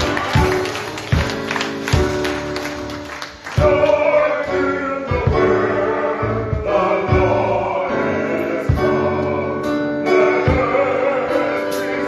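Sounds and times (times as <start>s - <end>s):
instrumental backing: 0.0s - 12.0s
choir singing gospel song: 3.5s - 12.0s.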